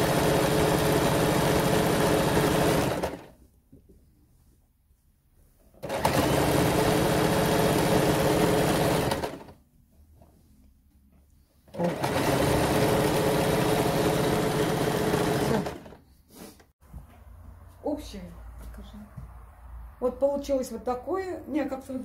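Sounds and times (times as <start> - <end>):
electric sewing machine stitching: 0.0 - 3.3, 5.8 - 9.6, 11.7 - 16.0.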